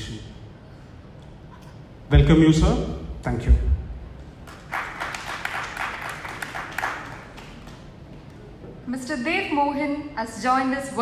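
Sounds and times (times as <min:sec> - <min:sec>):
audience applauding: 0:04.4 - 0:08.1.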